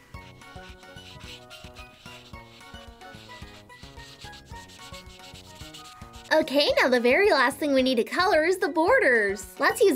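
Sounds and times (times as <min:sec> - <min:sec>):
marker rubbing on paper: 0:00.0 - 0:06.6
background music with steady beat: 0:00.0 - 0:09.9.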